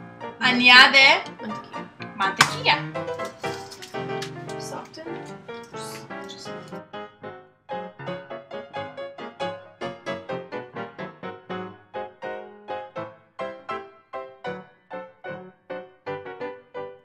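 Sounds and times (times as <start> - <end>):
piano music: 0.0 - 17.0.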